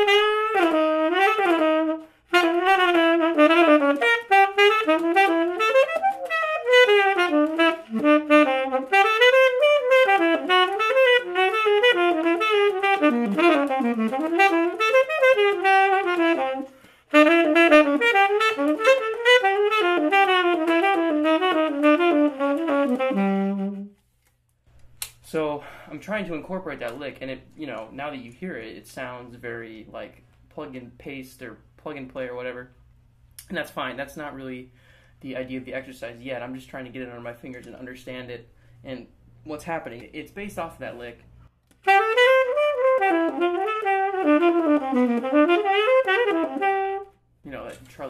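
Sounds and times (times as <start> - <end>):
solo jazz saxophone: 0.0 - 24.0, 40.8 - 48.0.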